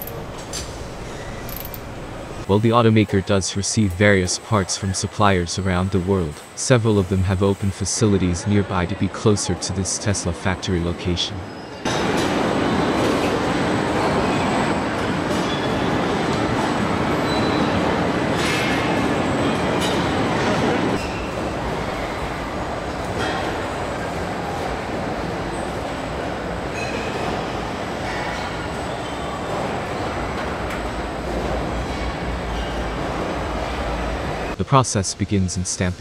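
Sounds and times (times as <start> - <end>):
assembly line machinery noise: 0.0 - 8.6, 11.8 - 34.8.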